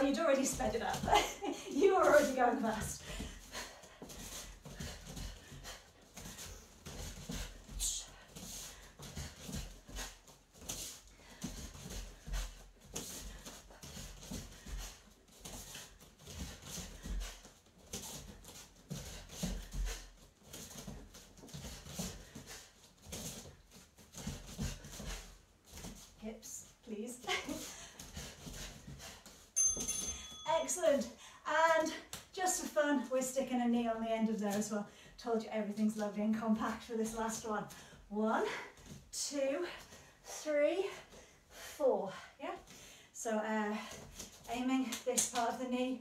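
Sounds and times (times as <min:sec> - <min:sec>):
bare feet thudding on foam mats: 0:00.0 - 0:31.0
hard rhythmic breathing: 0:00.0 - 0:32.8, 0:37.0 - 0:45.1.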